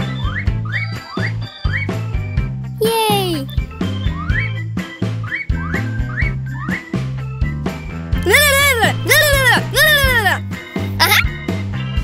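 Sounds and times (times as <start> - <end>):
cartoon background music: 2.8 - 3.6, 8.2 - 11.4.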